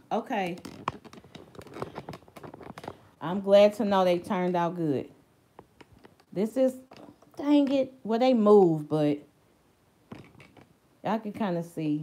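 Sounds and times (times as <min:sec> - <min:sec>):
handling noise clicks and scratches: 0:00.3 - 0:03.1.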